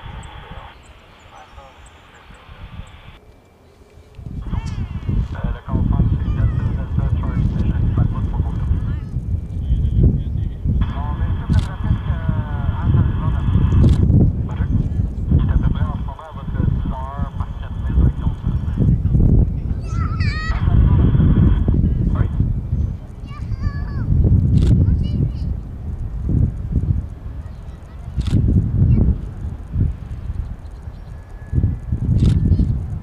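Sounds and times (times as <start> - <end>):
birds honking: 0.0 - 5.3
steady low rumble: 0.0 - 33.0.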